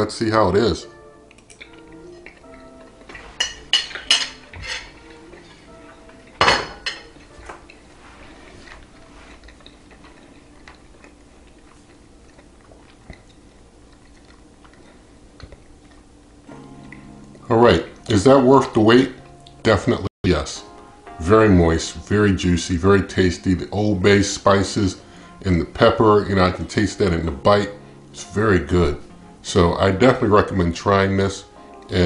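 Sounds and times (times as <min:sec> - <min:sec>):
soft background music: 0:00.0 - 0:32.0
man chewing: 0:01.0 - 0:03.7, 0:07.1 - 0:18.1.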